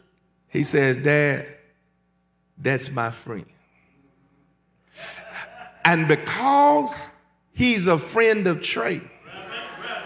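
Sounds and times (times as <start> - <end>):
man speaking: 0.5 - 1.7, 2.6 - 3.6, 5.0 - 9.1.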